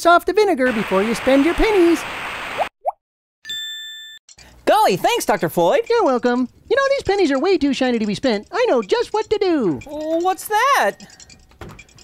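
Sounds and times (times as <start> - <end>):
bell-like ding: 3.4 - 4.2.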